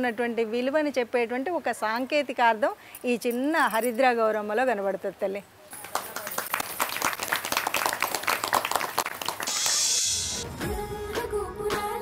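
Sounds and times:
people clapping: 5.7s - 10.4s
short bright hiss: 9.4s - 10.4s.

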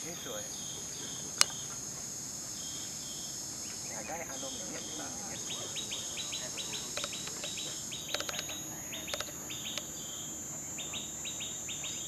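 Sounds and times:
birds chirping: 0.0s - 12.0s
high-pitched insect drone: 0.0s - 12.0s
sharp clicks: 6.3s - 10.1s.

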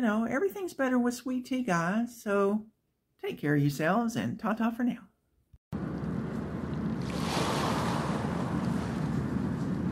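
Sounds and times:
ocean surf rushing: 6.1s - 9.9s.

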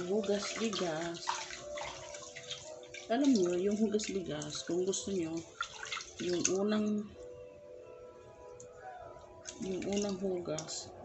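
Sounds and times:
hands washing rice in water: 0.0s - 6.9s, 9.4s - 10.9s
water sloshing with small clicks: 0.0s - 7.0s, 9.3s - 10.9s.

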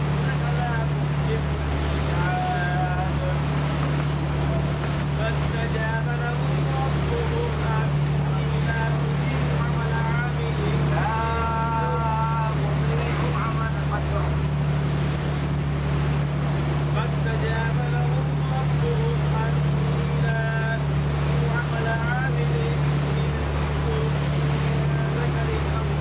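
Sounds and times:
boat engine droning: 0.0s - 26.0s.

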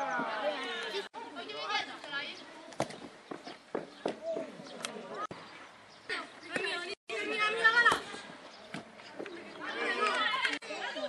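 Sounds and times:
people calling out and chattering: 0.0s - 11.0s.

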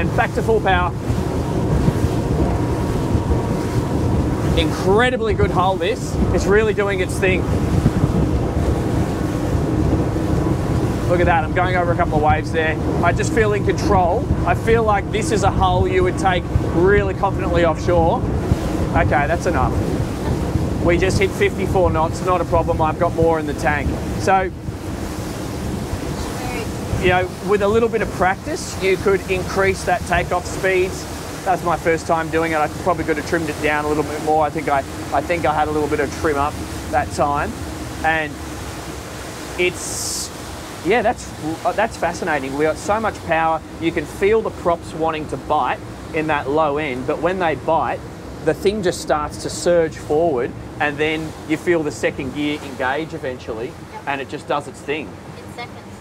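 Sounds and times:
wind buffeting microphone: 0.0s - 54.3s
boat engine roaring: 0.0s - 56.0s
low hum of outboard motors: 0.0s - 56.0s
water rushing: 0.0s - 56.0s.

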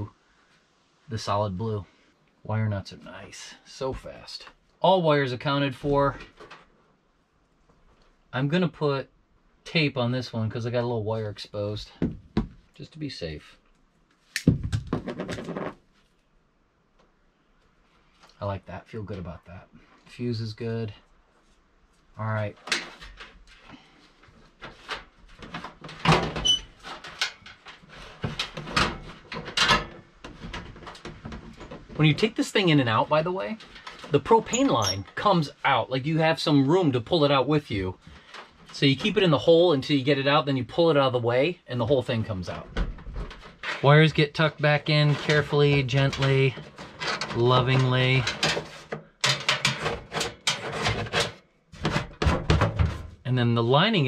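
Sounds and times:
sheet metal knocking and scraping: 45.1s - 53.2s.

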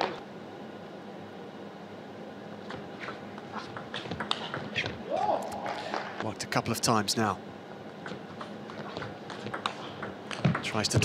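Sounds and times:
quiet arena ambience: 0.0s - 11.0s
table tennis ball bouncing: 3.1s - 5.0s, 8.0s - 11.0s
person speaking: 10.6s - 11.0s.

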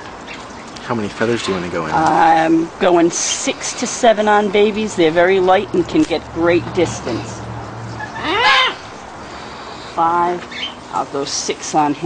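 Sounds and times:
macaw call: 8.0s - 8.9s.

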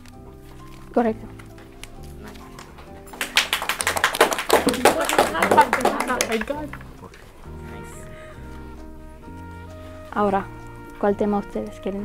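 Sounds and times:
people clapping: 1.5s - 7.6s.

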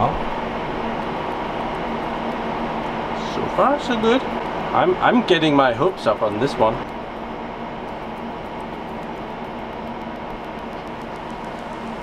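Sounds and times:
server cooling fans whirring: 0.0s - 12.0s.

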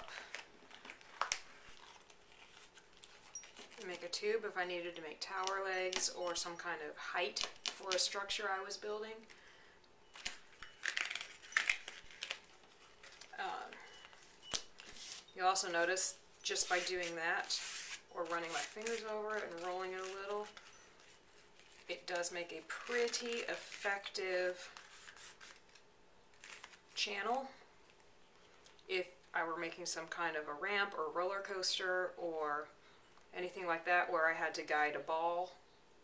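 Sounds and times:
duct tape crinkling: 0.0s - 4.3s, 5.2s - 6.4s, 7.3s - 9.5s, 10.1s - 28.9s
soft crackles: 0.0s - 29.4s.

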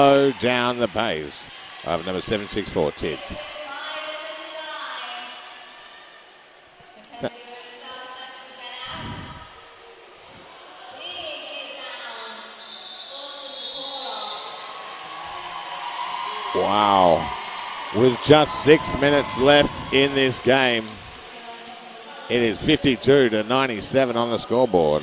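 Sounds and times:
crowd hubbub: 14.2s - 25.0s.

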